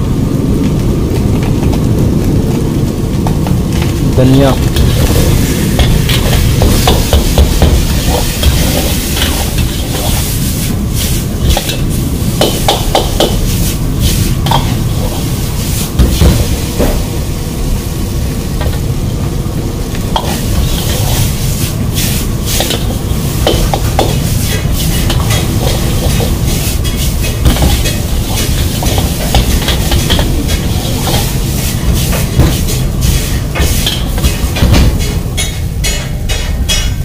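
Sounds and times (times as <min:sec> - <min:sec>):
low rumble: 0:00.0 - 0:12.4
steady low rumble: 0:00.0 - 0:37.0
noodles sizzling in a wok: 0:04.4 - 0:35.9.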